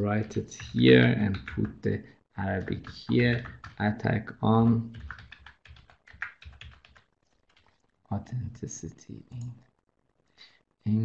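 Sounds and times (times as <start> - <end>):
typing on keyboard: 0.1 - 1.9, 2.5 - 7.8.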